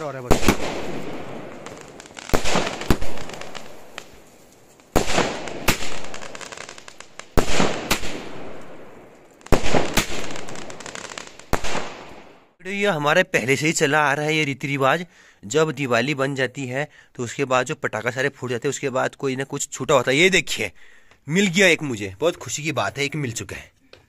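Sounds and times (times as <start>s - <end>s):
fireworks bangs: 0.0s - 12.6s
fading crackle of firework sparks: 0.4s - 12.4s.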